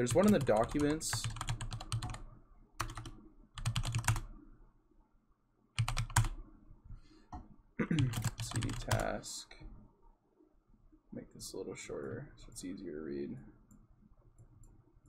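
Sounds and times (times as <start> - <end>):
typing on computer keyboard: 0.0 - 2.2, 2.8 - 4.3, 5.8 - 6.4, 8.0 - 9.1.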